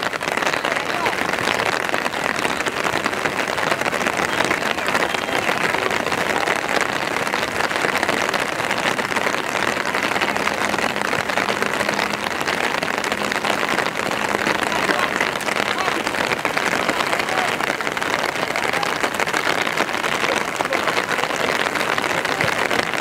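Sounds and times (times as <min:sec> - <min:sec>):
steady rain pattering: 0:00.0 - 0:23.0.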